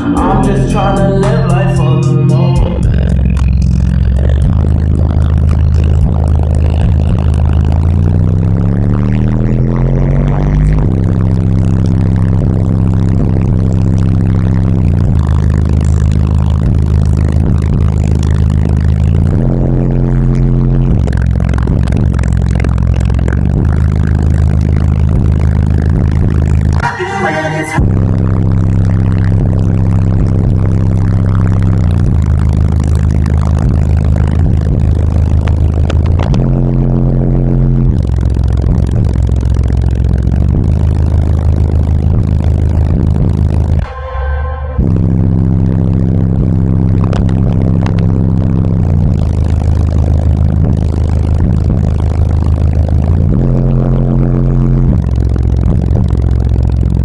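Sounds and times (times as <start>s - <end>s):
loud bass-heavy music: 0.0s - 57.0s.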